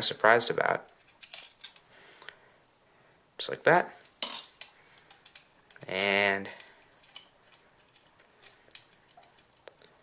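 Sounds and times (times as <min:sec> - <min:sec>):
metal parts clinking on bracket: 0:00.9 - 0:01.8.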